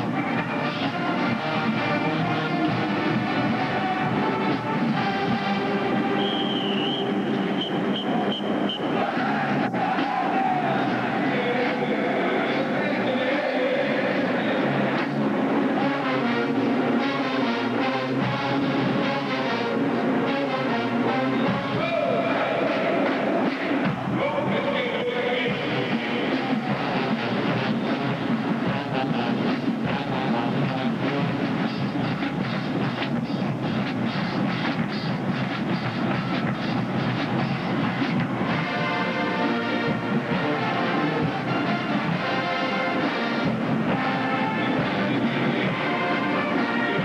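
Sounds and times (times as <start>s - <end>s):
brass band playing held chords: 0.0s - 47.0s.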